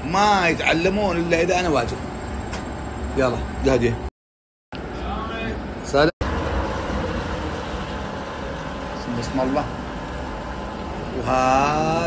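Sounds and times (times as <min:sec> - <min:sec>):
gas burner rushing: 0:06.2 - 0:12.0.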